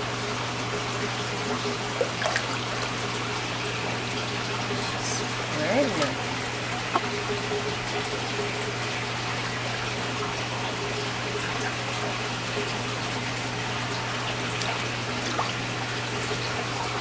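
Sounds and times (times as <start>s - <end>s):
water sloshing in a tub: 0.0s - 17.0s
small water splashes: 1.0s - 5.0s, 9.6s - 17.0s.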